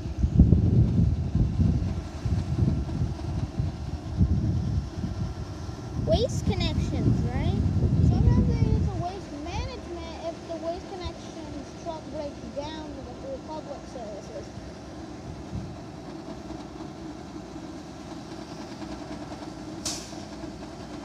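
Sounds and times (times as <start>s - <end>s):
diesel truck engine running: 0.0s - 21.0s.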